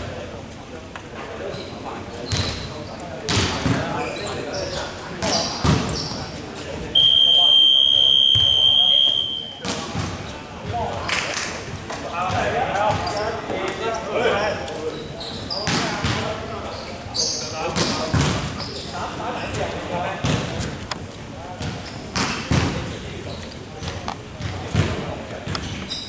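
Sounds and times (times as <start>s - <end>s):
players' voices: 0.0s - 26.0s
basketballs bouncing on court: 2.3s - 2.7s, 15.6s - 16.3s, 17.8s - 18.6s, 20.2s - 20.7s, 23.8s - 25.8s.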